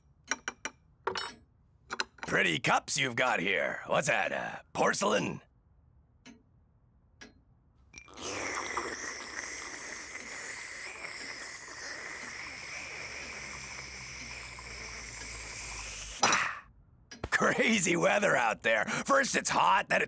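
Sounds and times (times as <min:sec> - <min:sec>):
cartoon coffee slurp: 0:08.0 - 0:16.7.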